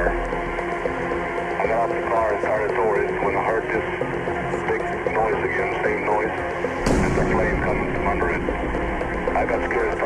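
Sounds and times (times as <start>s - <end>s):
steady low tones: 6.5s - 10.0s.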